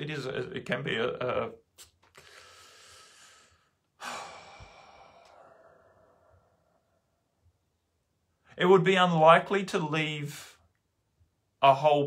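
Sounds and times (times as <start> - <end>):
man breathing out: 2.1 - 7.0
man sighing: 2.2 - 6.5.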